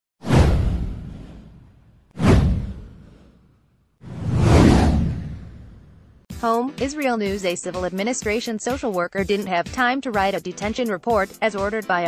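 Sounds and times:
whoosh with bass hit: 0:00.2 - 0:03.4, 0:04.0 - 0:06.2.

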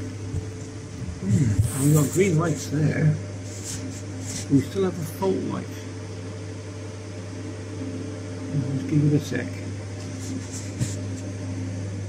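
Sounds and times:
cooling fans humming: 0:00.0 - 0:12.0.

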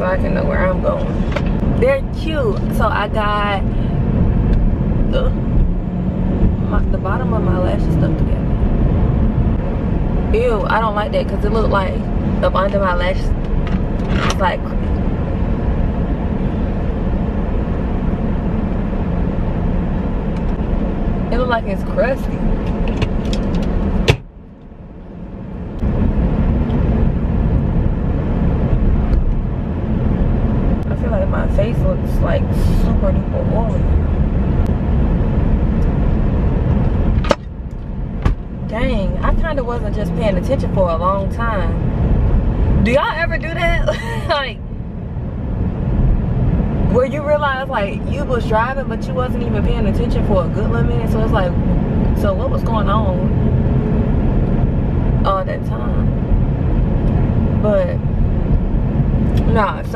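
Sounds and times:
road and engine rumble in car: 0:00.0 - 0:59.9.

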